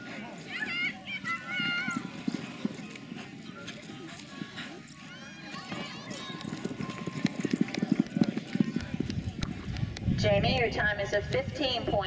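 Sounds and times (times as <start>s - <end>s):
horse hoofbeats galloping on dirt: 0.0s - 12.0s.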